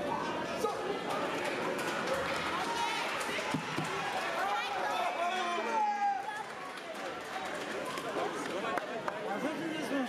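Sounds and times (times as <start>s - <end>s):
mixed chatter: 0.0s - 10.0s.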